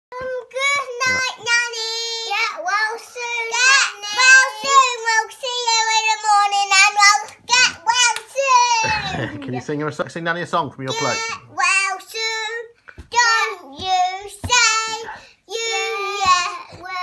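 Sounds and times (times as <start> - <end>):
young children singing: 0.2 - 9.6, 10.9 - 17.0.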